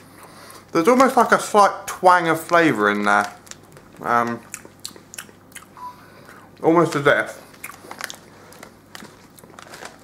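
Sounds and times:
crisp packet crackling: 0:02.2 - 0:04.6, 0:06.8 - 0:10.0.

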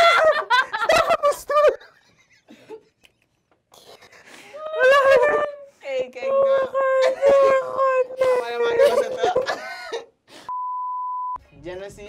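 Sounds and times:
censor bleep tone: 0:10.5 - 0:11.4.

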